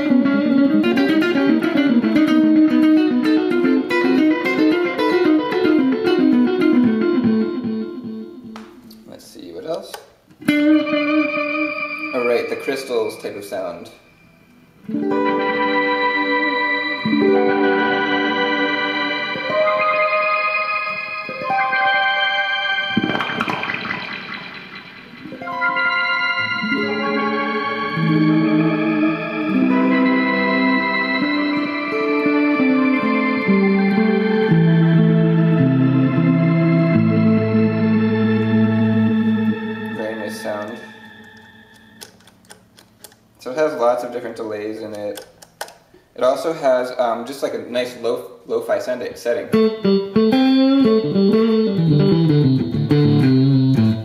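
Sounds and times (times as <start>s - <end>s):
electric guitar with delay: 0.0s - 8.9s, 10.4s - 43.1s, 49.5s - 54.0s.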